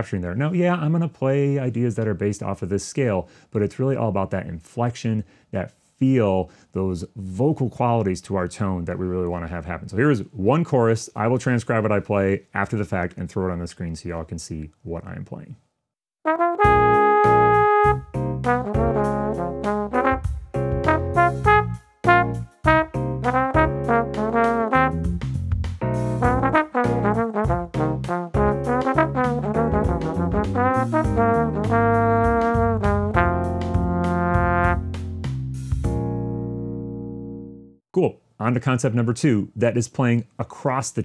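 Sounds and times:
trombone playing jazz blues: 16.3 - 35.4.

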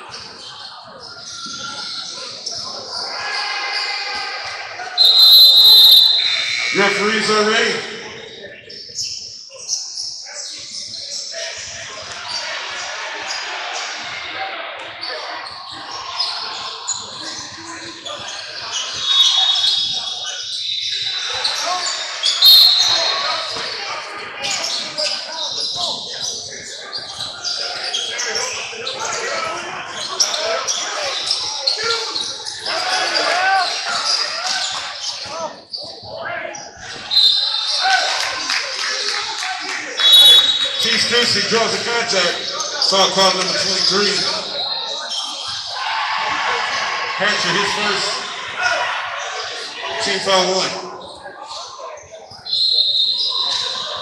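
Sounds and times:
chattering voices: 0.0 - 54.0.

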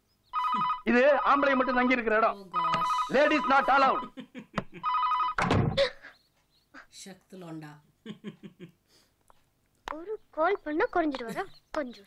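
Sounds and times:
two-tone electronic telephone ring: 0.4 - 4.1, 4.8 - 5.5
thud: 5.4 - 5.8.

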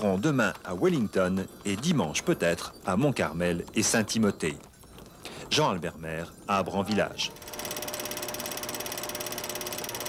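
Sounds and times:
projector-like mechanical clatter: 0.0 - 10.0.

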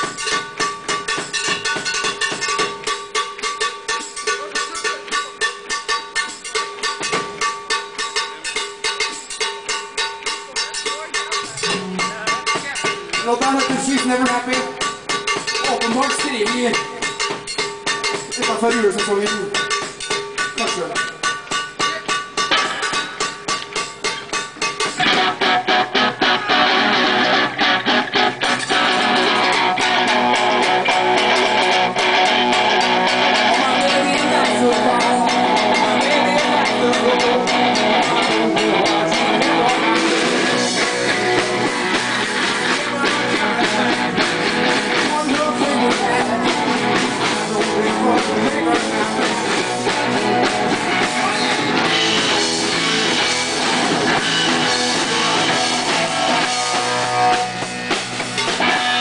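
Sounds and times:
blues-rock band playing: 0.0 - 59.0
fast percussion beat: 0.0 - 59.0
held electric guitar notes: 25.0 - 59.0
person singing: 31.9 - 52.4.

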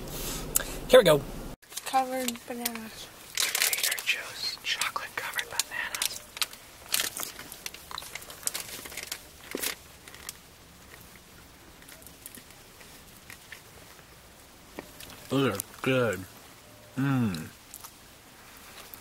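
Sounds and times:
paper bag rustling and crinkling: 1.7 - 4.3, 5.1 - 11.2.

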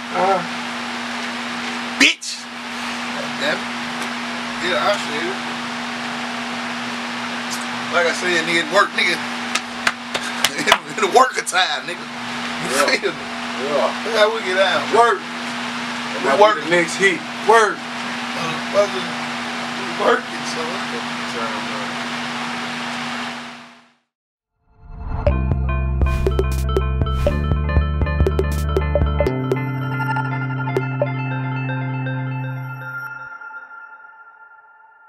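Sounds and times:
steady low hum: 0.0 - 23.5.

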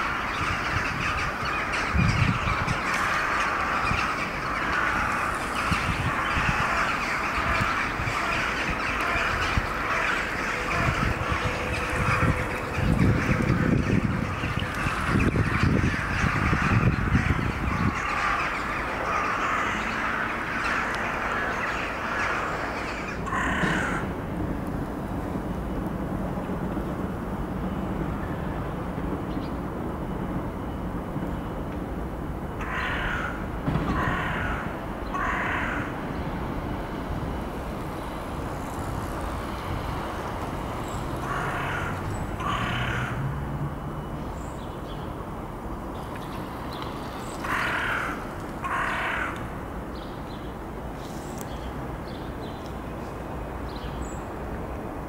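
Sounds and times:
crows cawing: 0.0 - 24.2, 32.6 - 36.0, 41.2 - 43.3, 47.3 - 49.6.

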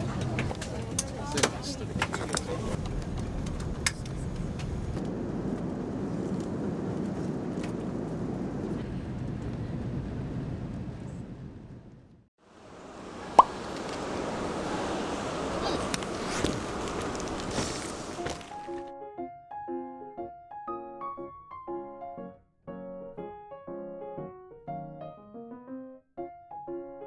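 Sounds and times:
airliner cabin rumble: 0.0 - 18.6.

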